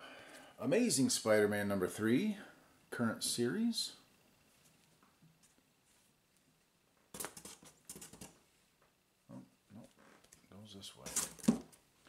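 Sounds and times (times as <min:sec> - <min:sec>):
person murmuring: 0:09.3 - 0:09.9.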